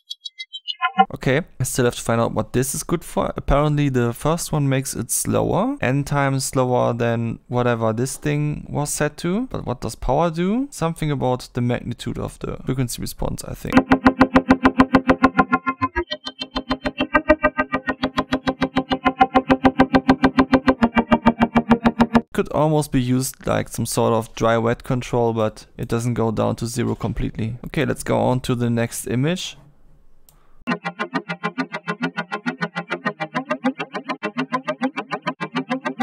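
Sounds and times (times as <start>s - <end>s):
fast repeating distorted plucked note: 13.8s - 22.3s, 30.7s - 36.0s
pulsing synthesizer tone: 13.8s - 22.3s.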